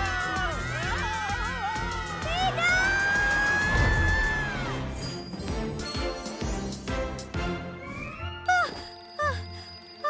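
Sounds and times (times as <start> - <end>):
backing music: 0.0 - 8.5.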